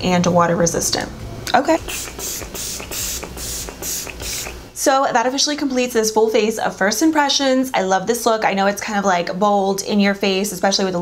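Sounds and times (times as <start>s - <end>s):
spray bottle spritzes: 1.8s - 4.7s.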